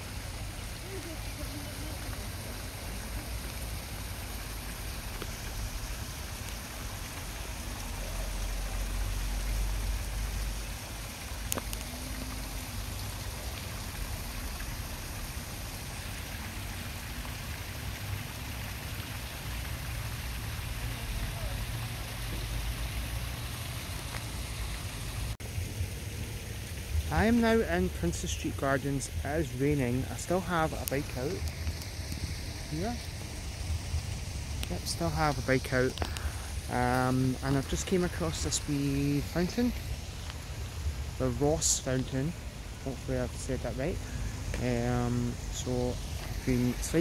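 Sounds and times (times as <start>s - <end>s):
fountain water splashing into basin: 0.0s - 47.0s.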